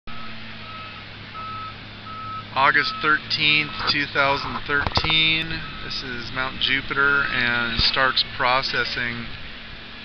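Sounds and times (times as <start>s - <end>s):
warning alarm beeping: 0.1s - 6.6s
heavy machine engine running: 0.1s - 10.0s.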